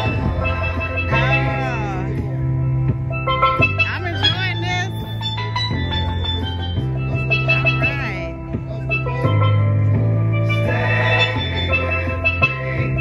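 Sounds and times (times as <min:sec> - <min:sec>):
low bass line: 0:00.0 - 0:13.0
steelpan melody: 0:00.0 - 0:13.0.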